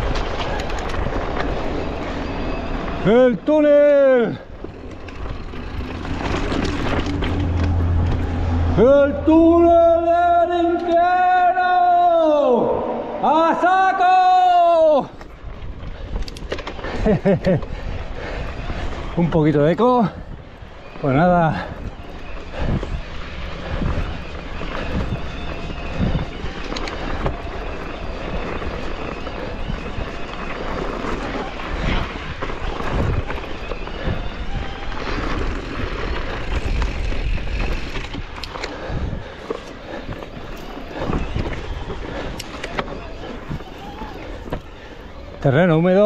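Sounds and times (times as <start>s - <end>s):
tyres crunching over stones: 0.0s - 9.6s, 20.8s - 46.0s
bike knocks and rattles: 4.5s - 8.3s
wind buffeting microphone: 14.9s - 46.0s.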